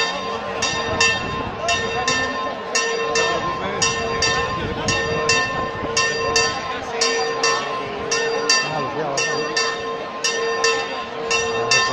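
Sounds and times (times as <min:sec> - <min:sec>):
church bell ringing: 0:00.0 - 0:11.9
murmur of large crowd: 0:00.0 - 0:11.9.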